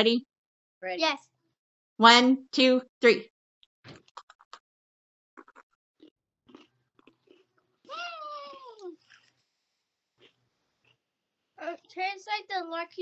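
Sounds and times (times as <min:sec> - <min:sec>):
crunching and chewing cookies: 0:05.4 - 0:12.0.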